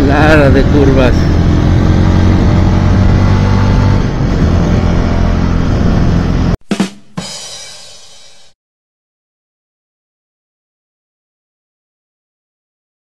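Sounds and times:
motorcycle running: 0:00.0 - 0:06.6
sharp percussive hits: 0:06.6 - 0:08.6.

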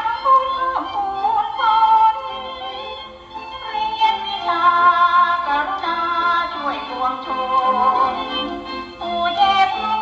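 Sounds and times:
waltz music accompaniment: 0:00.0 - 0:10.0
woman singing: 0:00.0 - 0:10.0.

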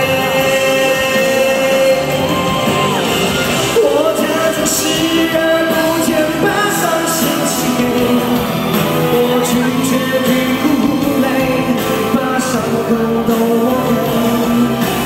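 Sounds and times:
amplified band backing: 0:00.0 - 0:15.0
man singing into microphone: 0:00.0 - 0:15.0.

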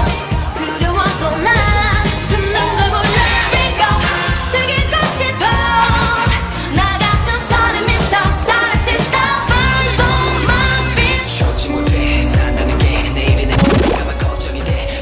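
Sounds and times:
pop song with sung vocals: 0:00.0 - 0:15.0.

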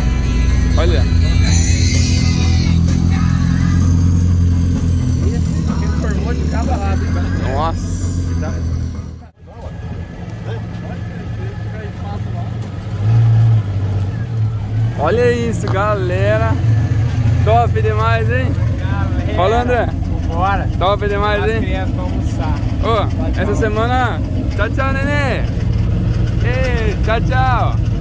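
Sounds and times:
car engine rumbling: 0:00.0 - 0:28.0
jeep engine rumbling: 0:00.0 - 0:28.0.

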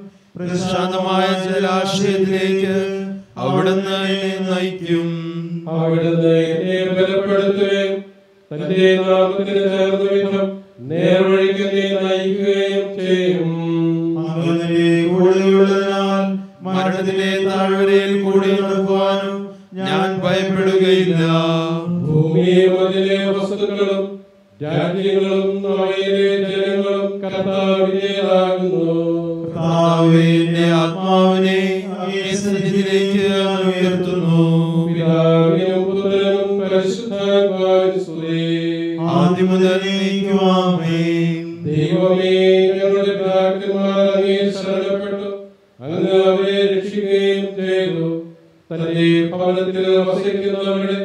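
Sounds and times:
man chanting: 0:00.0 - 0:51.0.

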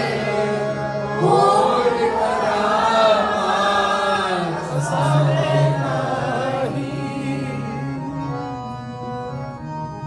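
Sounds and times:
group chanting melodically: 0:00.0 - 0:08.2
harmonium reed tones: 0:00.0 - 0:10.0.

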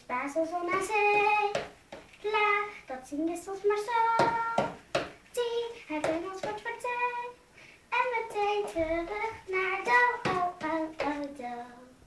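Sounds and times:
girl singing unaccompanied: 0:00.0 - 0:12.0.

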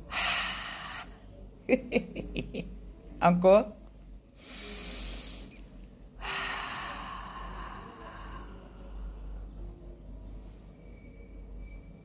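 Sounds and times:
woman breathing deeply: 0:00.0 - 0:01.2, 0:04.4 - 0:05.6, 0:06.2 - 0:09.4.

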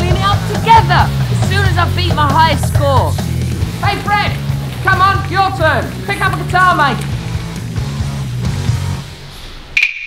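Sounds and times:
rock music: 0:00.0 - 0:09.8.

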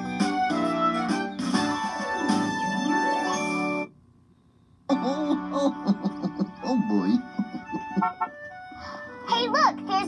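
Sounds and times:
television background music: 0:00.0 - 0:04.0, 0:04.8 - 0:10.0
child's excited voice: 0:09.2 - 0:10.0.

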